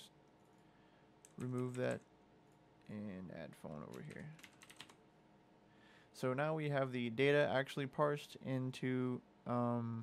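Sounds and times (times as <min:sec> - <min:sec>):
faint keyboard keystrokes: 0:03.9 - 0:05.0.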